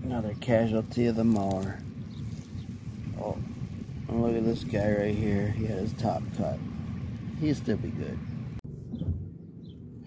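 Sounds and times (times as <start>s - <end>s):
wind rumble on microphone: 0.2s - 10.0s.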